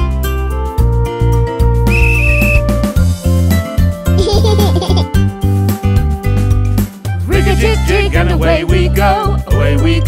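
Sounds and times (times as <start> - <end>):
high whistle blast: 1.9 - 2.8
bouncy children's song music: 3.2 - 10.0.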